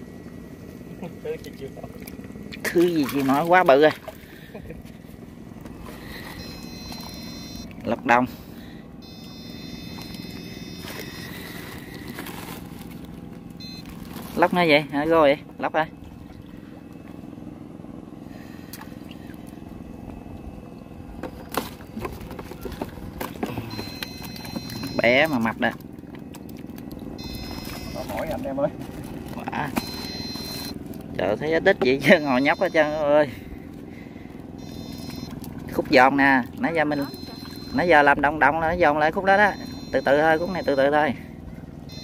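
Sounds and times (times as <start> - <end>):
low mechanical drone: 0.0 - 42.0
faint high whine: 5.8 - 12.8, 13.5 - 22.8, 27.2 - 28.8.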